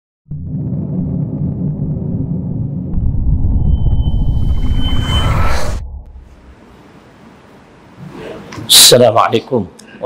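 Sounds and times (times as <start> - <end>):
deep rumbling build-up: 0.3 - 7.0.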